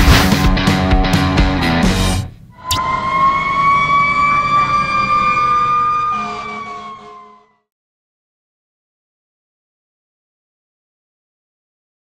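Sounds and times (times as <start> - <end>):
drawn-out siren tone: 2.5 - 7.7.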